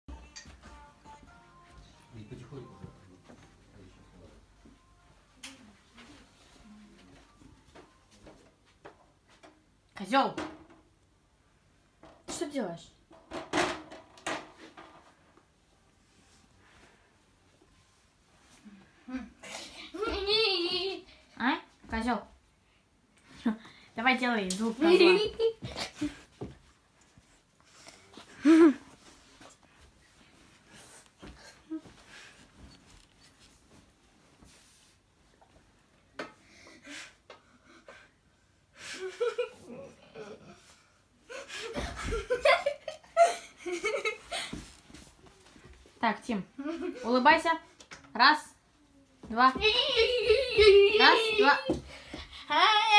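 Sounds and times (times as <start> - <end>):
child laughing and giggling: 19.1 - 21.2, 24.8 - 26.2, 38.9 - 44.6, 46.6 - 47.1, 49.6 - 52.9.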